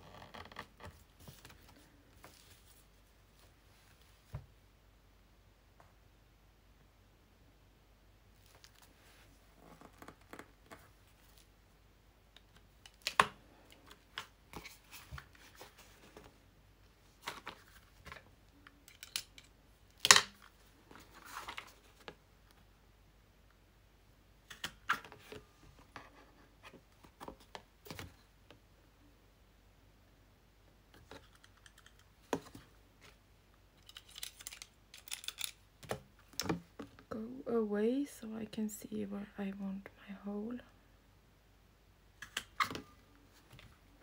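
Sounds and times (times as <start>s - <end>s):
soft rustling: 0.0s - 4.6s, 8.3s - 11.6s, 13.4s - 18.7s.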